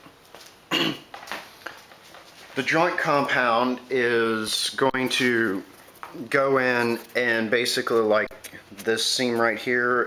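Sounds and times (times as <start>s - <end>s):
man coughing: 0.7s - 1.1s
throat clearing: 0.7s - 1.1s.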